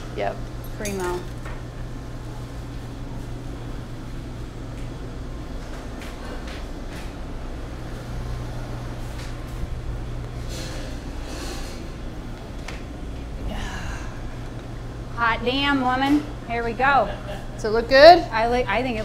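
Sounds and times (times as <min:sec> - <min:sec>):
machinery humming: 0:00.0 - 0:19.0.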